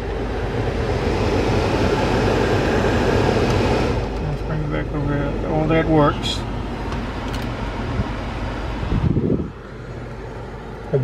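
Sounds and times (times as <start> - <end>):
air rush from car blower: 0.0 - 11.0
idling engine hum: 0.0 - 11.0.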